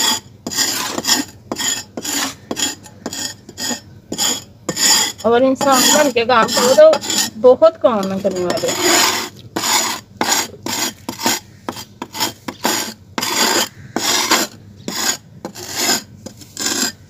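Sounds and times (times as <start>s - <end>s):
hands scraping dry soil: 0.0s - 7.4s, 8.0s - 17.0s.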